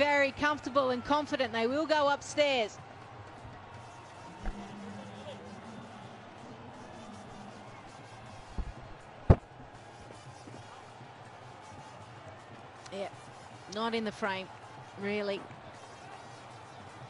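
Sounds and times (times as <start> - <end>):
low background broadcast noise: 0.0 - 17.0.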